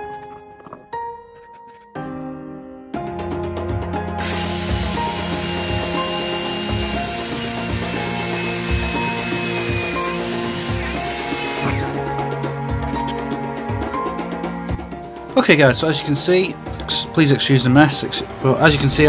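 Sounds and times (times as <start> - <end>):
background music with steady beat: 0.0 - 19.0
power drill whining: 4.2 - 12.0.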